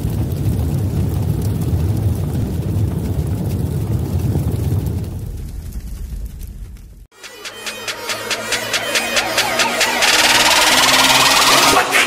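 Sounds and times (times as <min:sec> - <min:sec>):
electronic intro music: 0:07.1 - 0:12.0.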